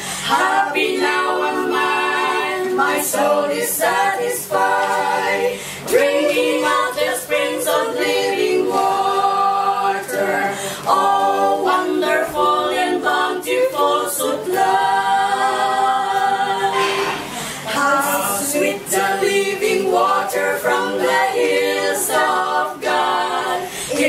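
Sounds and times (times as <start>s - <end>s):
women singing a hymn a cappella: 0.0s - 24.0s.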